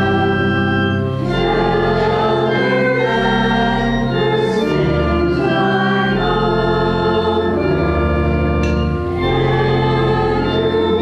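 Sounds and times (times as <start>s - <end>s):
church organ playing hymn: 0.0s - 11.0s
voices singing held chords: 0.0s - 11.0s.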